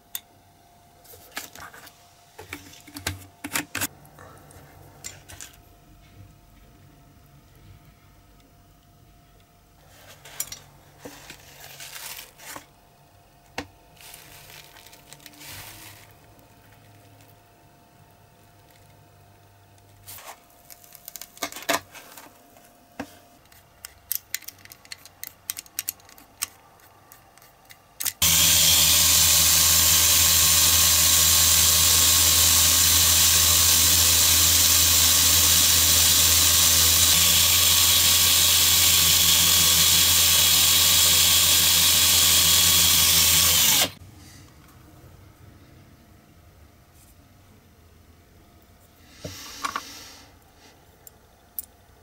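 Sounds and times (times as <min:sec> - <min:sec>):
clicks of small parts handled: 0:23.4 - 0:28.2
cordless drill running: 0:28.2 - 0:44.0.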